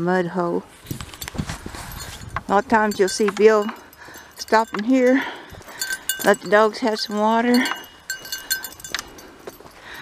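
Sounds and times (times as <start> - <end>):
dog collar bell tinkling: 1.8 - 10.0
light footfalls on dry ground: 7.3 - 10.0.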